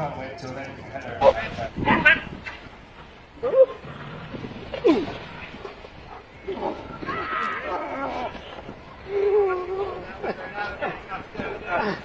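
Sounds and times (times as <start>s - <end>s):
people's voices and exclamations: 6.2s - 12.0s.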